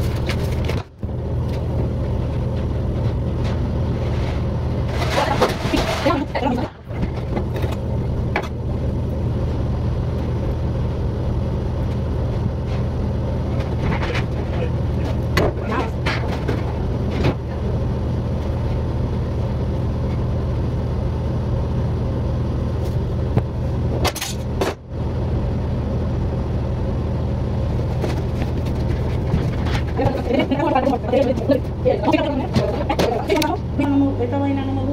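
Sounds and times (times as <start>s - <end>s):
low mechanical hum: 0.0s - 34.9s.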